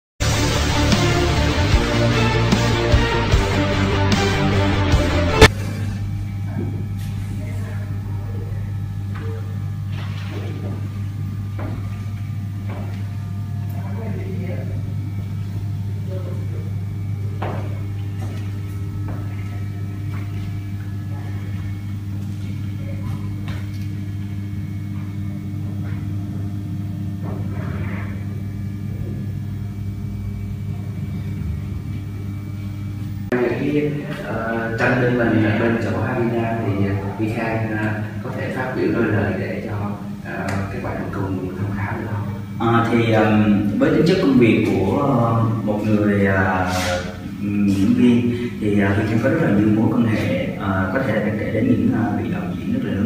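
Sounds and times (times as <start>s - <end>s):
room noise hum: 0.2s - 53.0s.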